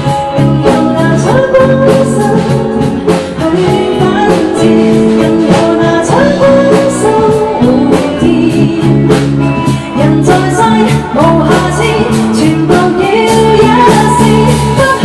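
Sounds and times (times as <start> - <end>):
guitar chords: 0.0 - 15.0
steady drum beat: 0.0 - 15.0
woman singing: 0.0 - 15.0.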